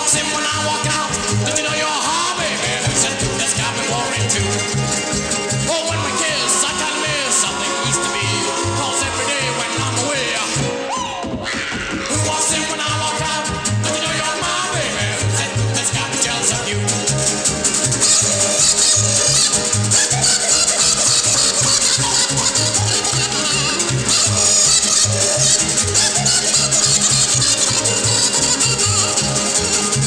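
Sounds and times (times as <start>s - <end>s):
bouncing bass line: 0.0s - 30.0s
rattling high percussion: 11.8s - 30.0s.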